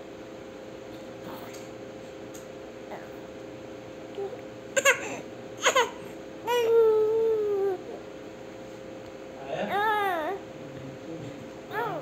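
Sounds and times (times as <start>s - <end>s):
baby crying and fussing: 4.8s - 7.9s.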